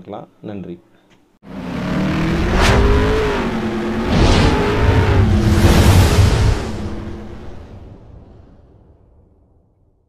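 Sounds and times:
car engine revving: 1.4 - 7.9
fast whoosh: 2.4 - 8.0.

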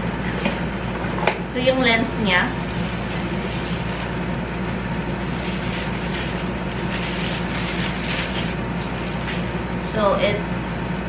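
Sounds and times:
background hum and hiss: 0.0 - 11.0
plastic wrap crinkling: 2.3 - 9.6.

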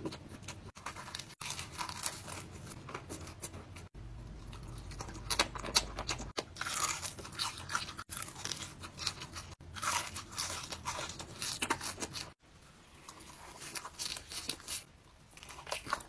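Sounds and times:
crunchy bites and chewing: 0.0 - 3.6, 4.3 - 16.0.

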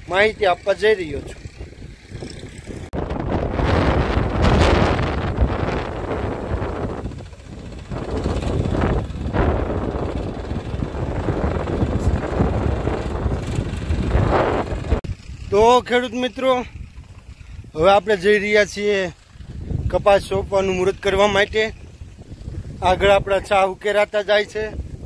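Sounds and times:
diesel tractor running: 0.0 - 25.0
wind buffeting microphone: 0.0 - 25.0.

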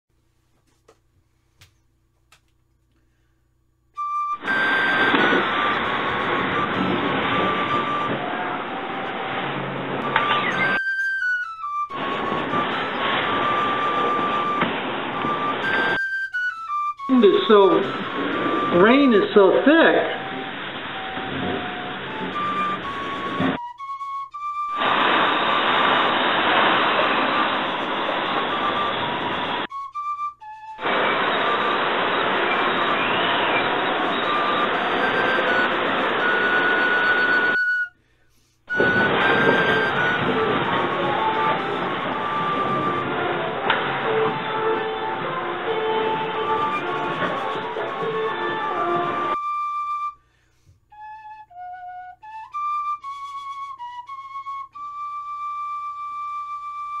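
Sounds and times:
tin whistle tune: 3.9 - 57.0
wind and heavy rain: 4.4 - 10.8, 11.9 - 16.0, 17.4 - 19.1, 20.1 - 23.6, 24.7 - 29.7, 30.8 - 37.7, 38.7 - 49.4.

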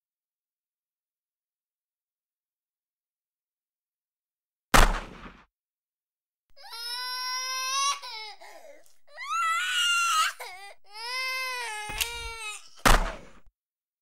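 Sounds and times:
loud thud: 4.8 - 5.5, 12.8 - 13.5
high-pitched crying wails: 6.6 - 12.8.

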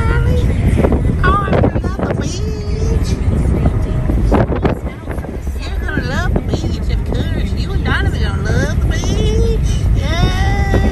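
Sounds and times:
car rumble inside cabin: 0.0 - 10.9.

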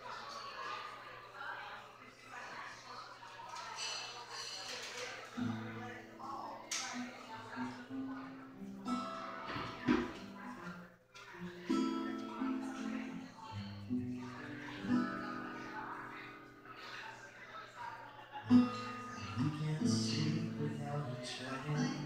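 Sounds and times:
voices talking: 0.0 - 22.0
acoustic guitar playing: 5.4 - 10.8, 11.4 - 17.0, 18.4 - 22.0.

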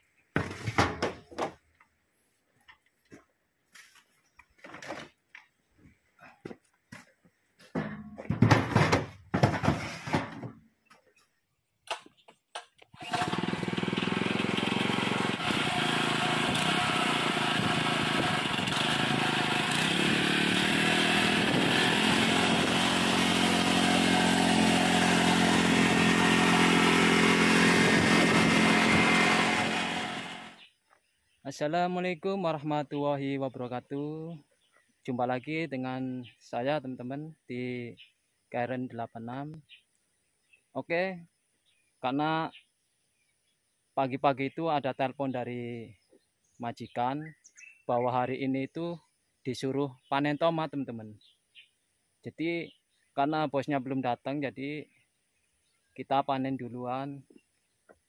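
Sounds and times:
plastic crates clattering: 7.8 - 10.6
small engine running: 12.9 - 30.7.

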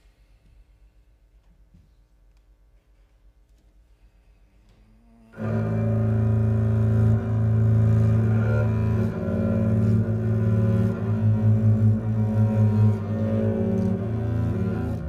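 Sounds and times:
bowed double bass: 5.0 - 15.0.

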